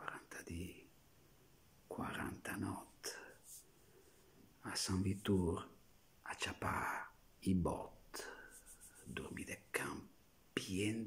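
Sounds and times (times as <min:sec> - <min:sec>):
man whispering: 0:00.0 - 0:00.9, 0:01.9 - 0:03.7, 0:04.6 - 0:11.0.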